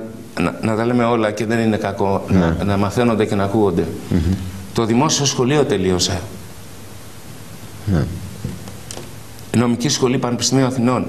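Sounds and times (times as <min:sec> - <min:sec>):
man speaking: 0:00.0 - 0:06.4, 0:07.8 - 0:08.3
steady background hiss: 0:00.0 - 0:11.0.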